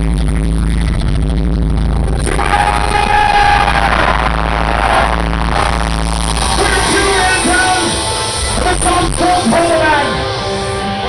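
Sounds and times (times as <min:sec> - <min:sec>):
bright noisy music layer: 0:00.0 - 0:11.0
loud music over pa: 0:00.0 - 0:11.0
steady low drone: 0:00.0 - 0:11.0.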